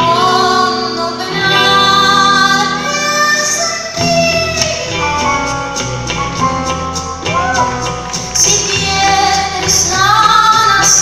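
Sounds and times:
woman singing with vibrato: 0:00.0 - 0:05.6, 0:07.4 - 0:11.0
guitar accompaniment: 0:00.0 - 0:11.0.

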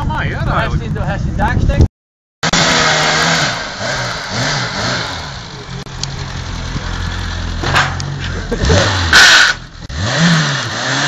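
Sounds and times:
car engine revving: 0:02.4 - 0:11.0.

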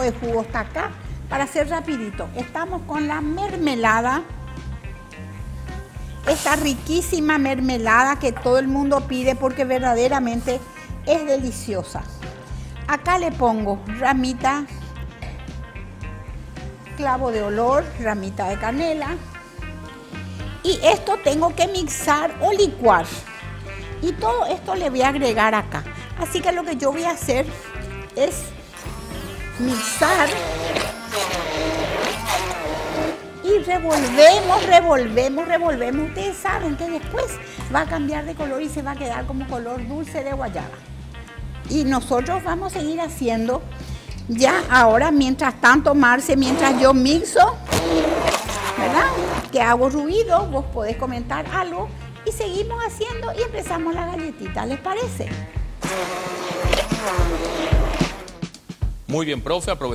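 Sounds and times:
immersion blender running: 0:28.8 - 0:33.3, 0:33.9 - 0:34.8, 0:46.4 - 0:47.0, 0:47.6 - 0:49.5, 0:55.8 - 0:58.5.

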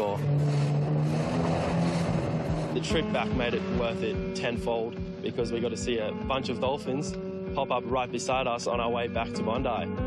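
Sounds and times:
jet ski engine: 0:00.0 - 0:05.8.

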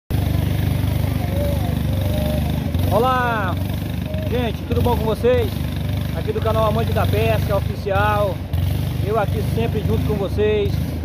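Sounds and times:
boat engine droning: 0:00.1 - 0:11.0.

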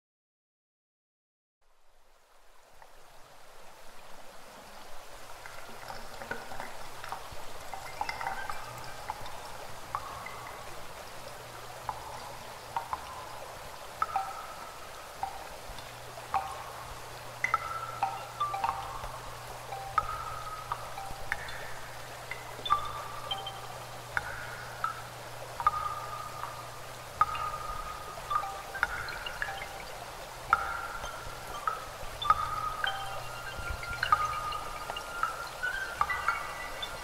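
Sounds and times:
stream trickling into a pool: 0:01.6 - 0:37.0
faint watery hiss: 0:01.7 - 0:37.0
clear plinking water drops: 0:05.4 - 0:37.0.

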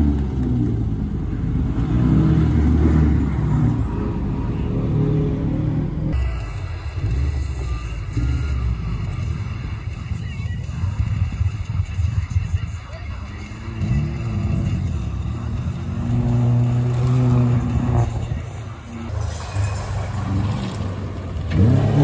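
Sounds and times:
rally car engines rumbling: 0:00.0 - 0:22.0.

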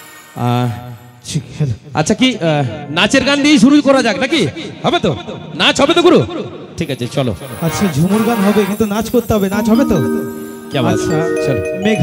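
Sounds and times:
man calling over loudspeaker: 0:00.4 - 0:12.0.

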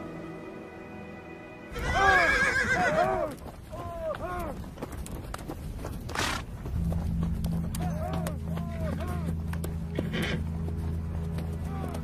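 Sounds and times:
quiet music: 0:00.0 - 0:02.2, 0:06.6 - 0:12.0
horses whinnying: 0:01.7 - 0:03.4, 0:09.9 - 0:10.5.

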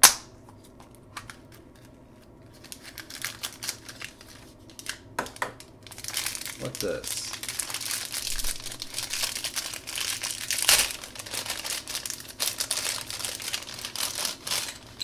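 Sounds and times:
plastic wrapping crinkling: 0:02.4 - 0:15.0.

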